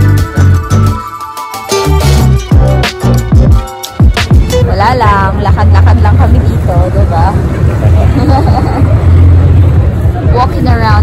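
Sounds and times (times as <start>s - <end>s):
traffic rumble: 2.1s - 11.0s
people's voices: 4.6s - 11.0s.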